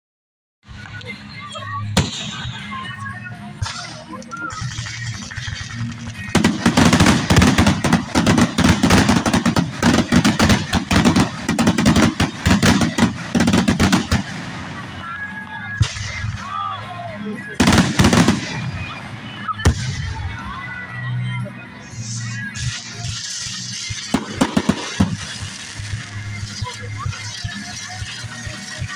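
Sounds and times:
fireworks bangs and crackles: 0:02.0 - 0:20.9, 0:21.8 - 0:28.9.

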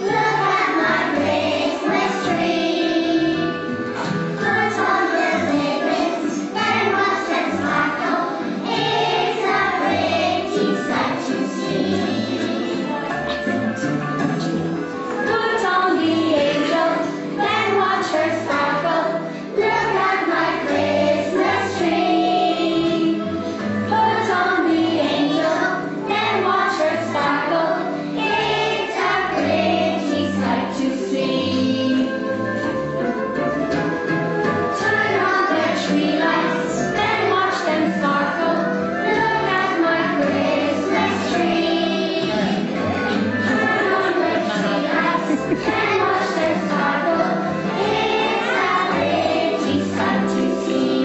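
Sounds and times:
children singing: 0:00.0 - 0:33.4, 0:34.4 - 0:51.0
instrumental accompaniment: 0:00.0 - 0:51.0.

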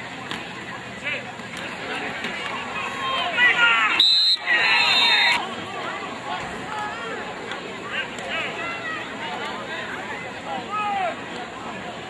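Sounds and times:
crowd yelling and cheering: 0:00.0 - 0:12.0
referee's whistle blast: 0:03.9 - 0:05.4.

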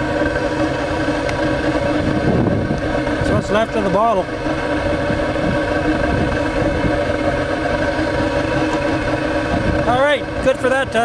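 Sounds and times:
burner exhaust roaring through pipe: 0:00.0 - 0:11.0
droning hum: 0:00.0 - 0:11.0.

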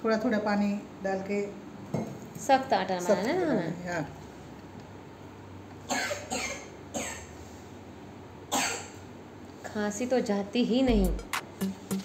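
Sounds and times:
person coughing: 0:05.9 - 0:07.3.

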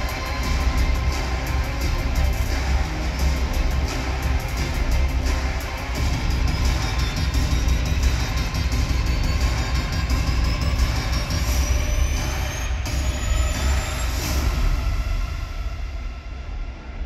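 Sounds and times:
intro music over arena speakers: 0:00.0 - 0:17.0.

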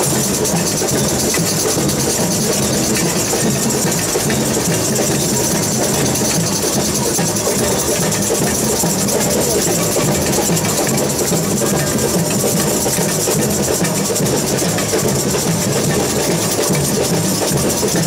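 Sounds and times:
fast rattle of percussion: 0:00.0 - 0:18.0
surdo bass drums pulsing: 0:00.0 - 0:18.0.

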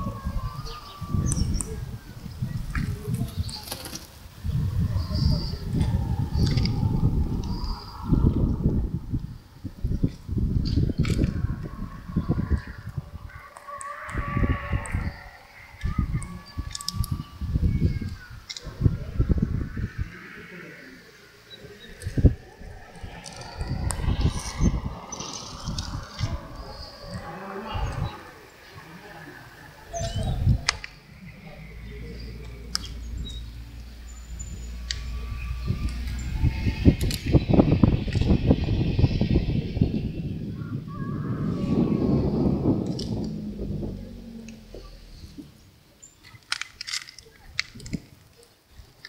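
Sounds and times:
birds calling and chirping: 0:00.0 - 0:49.0
wind rumbling on microphone: 0:00.0 - 0:49.0.

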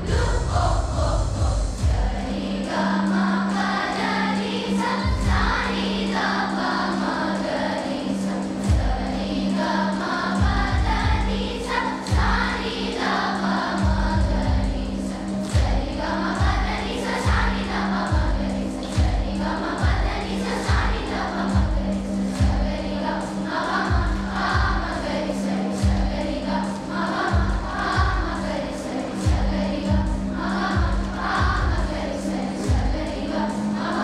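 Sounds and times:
low drum beating: 0:00.0 - 0:02.3
children's choir singing: 0:00.0 - 0:34.0
musical accompaniment: 0:00.0 - 0:34.0.

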